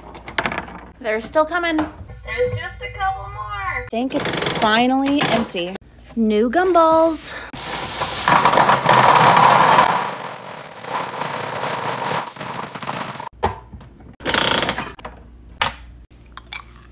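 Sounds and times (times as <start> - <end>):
gumballs pouring into plastic globe: 7.6 - 13.3.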